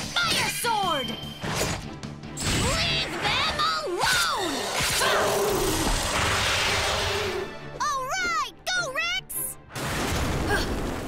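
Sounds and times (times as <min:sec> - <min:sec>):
dramatic background music: 0:00.0 - 0:11.0.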